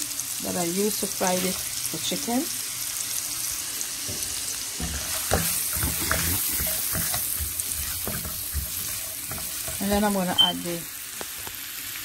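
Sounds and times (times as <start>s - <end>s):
onion sizzling in hot oil: 0.0s - 12.0s
plastic spoon stirring in pan: 4.1s - 10.5s.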